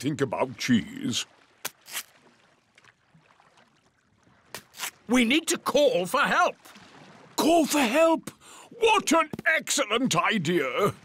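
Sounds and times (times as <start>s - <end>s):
scratching in sand: 4.6s - 5.0s.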